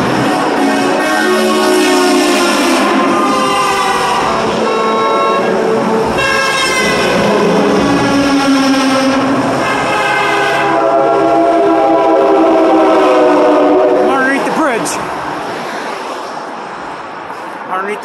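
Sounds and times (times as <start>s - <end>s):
passing traffic: 0.0s - 18.0s
truck air horn blasts: 0.1s - 14.1s.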